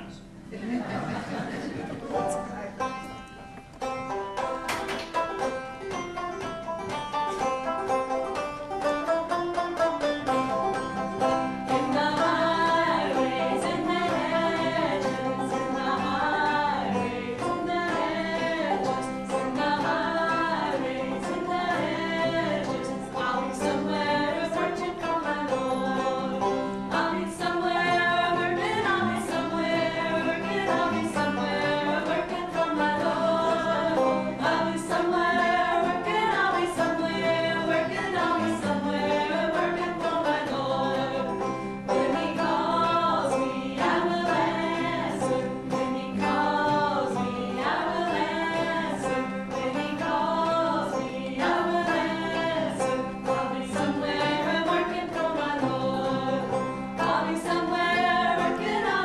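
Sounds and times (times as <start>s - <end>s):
string band strumming: 0.0s - 59.0s
women singing together: 11.4s - 59.0s.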